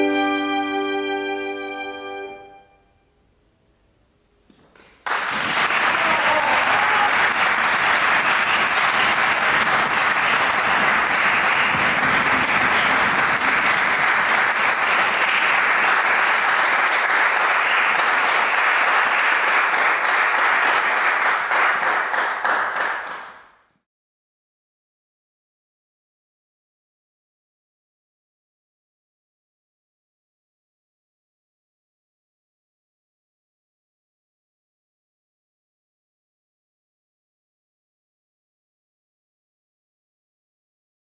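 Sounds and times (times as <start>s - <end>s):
audience applauding: 4.7s - 23.6s.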